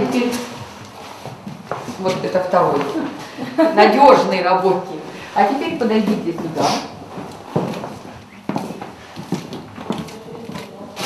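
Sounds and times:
footsteps on bare floor: 0.0 - 3.4, 5.4 - 11.0.

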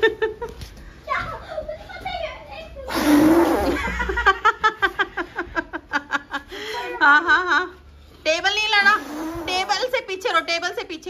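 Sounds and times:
child's voice: 1.1 - 2.9
man blowing hard into bottle: 2.9 - 3.8.

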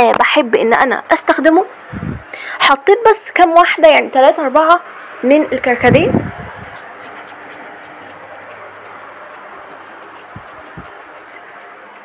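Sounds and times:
faint low hum: 4.2 - 12.0.

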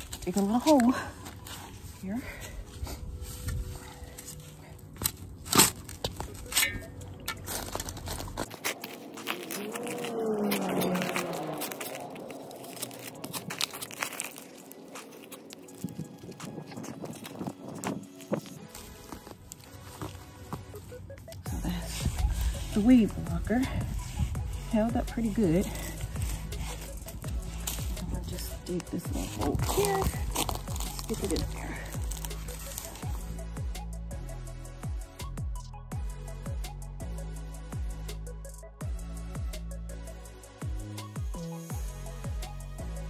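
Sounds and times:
background music: 0.0 - 43.0
shovel digging into soil: 3.4 - 20.2, 21.5 - 33.3.

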